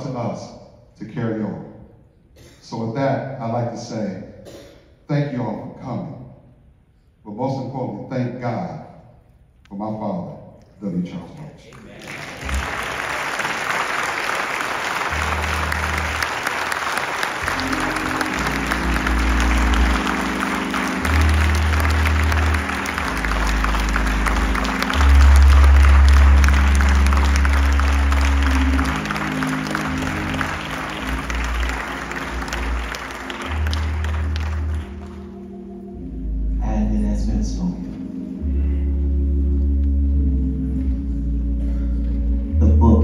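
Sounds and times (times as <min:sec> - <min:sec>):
congregation applauding: 0:11.3 - 0:35.9
low bass notes and chords: 0:15.1 - 0:16.4, 0:17.4 - 0:43.0.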